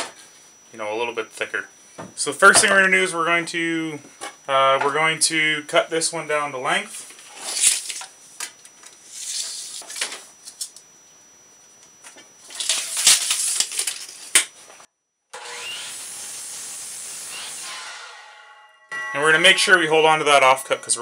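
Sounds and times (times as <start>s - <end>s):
steady hiss: 15.7s - 17.9s.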